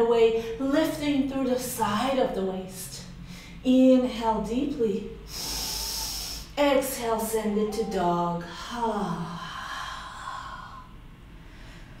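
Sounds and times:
woman exhaling: 0:05.3 - 0:06.6.

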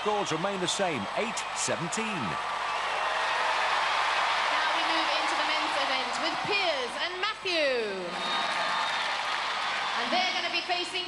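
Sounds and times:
loud whoops and shouts: 0:00.0 - 0:10.7
arena audience cheering: 0:00.0 - 0:11.0.

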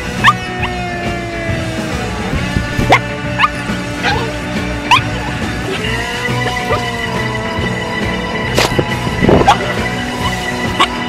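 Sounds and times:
small dogs yipping: 0:00.0 - 0:00.9, 0:02.4 - 0:07.0, 0:09.4 - 0:11.0
background music: 0:00.0 - 0:11.0.

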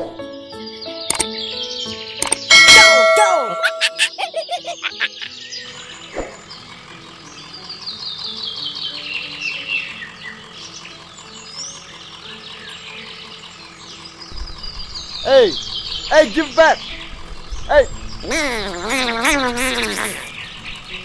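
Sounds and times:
birds chirping: 0:00.0 - 0:21.0
soft background music: 0:00.0 - 0:21.0.

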